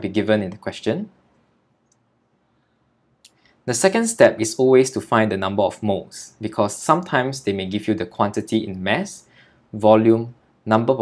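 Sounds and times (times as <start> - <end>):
man narrating: 0.0 - 1.2, 3.6 - 11.0
faint click: 1.3 - 2.1.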